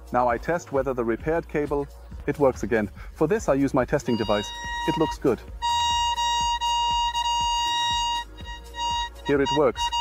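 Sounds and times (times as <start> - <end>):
buzzy electronic tone: 4.0 - 10.0.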